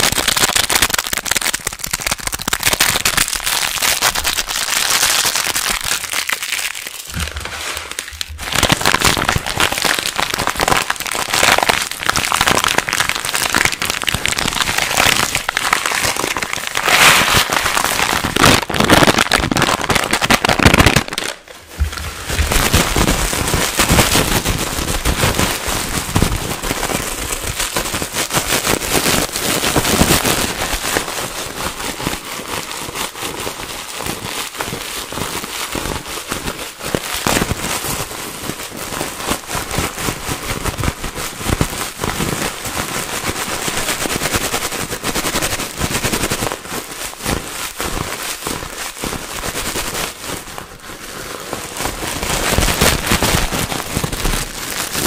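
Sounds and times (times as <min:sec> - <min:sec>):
plastic packaging crinkling: 0:00.0 - 0:55.0
plastic wrap squeezed: 0:00.0 - 0:55.0.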